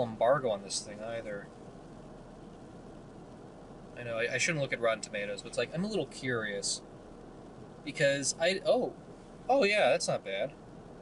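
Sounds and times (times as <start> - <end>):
car cabin hum and hiss: 0.0 - 11.0.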